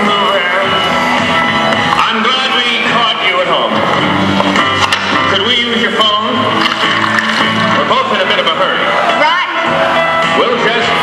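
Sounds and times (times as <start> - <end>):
film music through speakers: 0.0 - 11.0.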